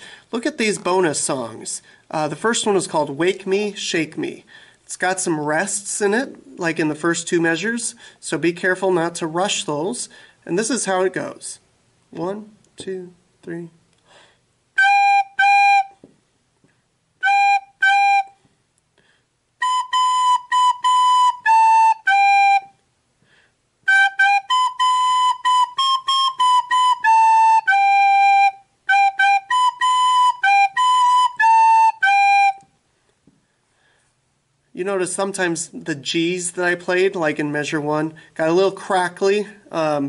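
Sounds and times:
recorder playing simple melody: 14.8 - 16.0, 17.2 - 18.4, 19.6 - 22.8, 23.8 - 32.7.

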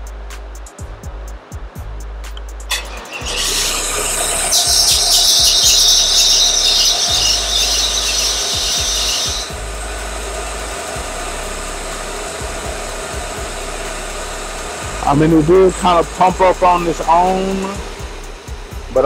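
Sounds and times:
car engine idling: 1.8 - 19.0
loud high squeal: 2.7 - 9.6.

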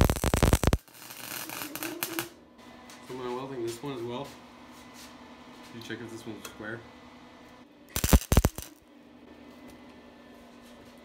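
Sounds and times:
welder arc crackling: 0.0 - 2.4, 8.0 - 8.8.

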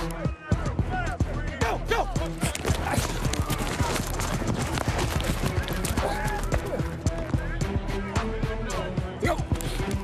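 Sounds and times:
football helmets and pads clacking: 2.1 - 7.6.

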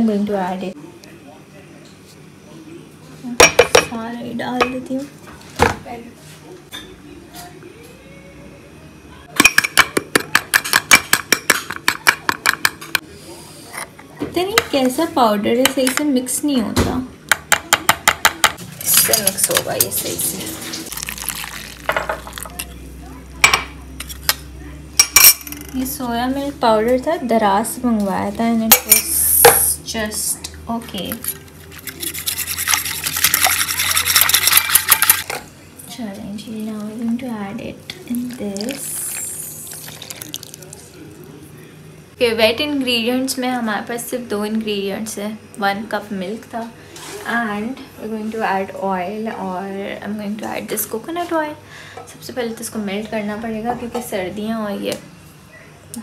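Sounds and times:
metal spoon clinking against mug: 31.3 - 35.2
whisk beating liquid in metal bowl: 31.7 - 35.2.

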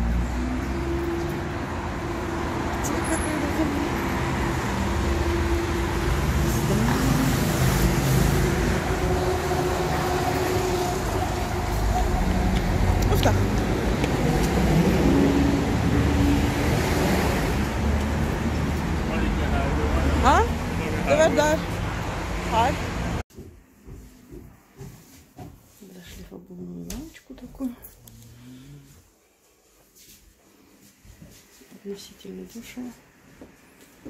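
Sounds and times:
cars passing: 0.0 - 23.2.

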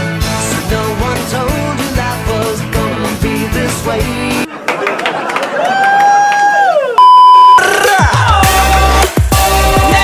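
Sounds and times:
censor bleep: 7.0 - 7.7.

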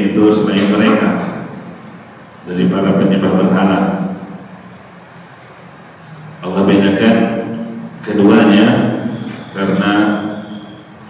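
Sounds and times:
man speaking: 0.0 - 1.7, 2.4 - 4.4, 6.4 - 10.4
steady background noise: 0.0 - 11.0.

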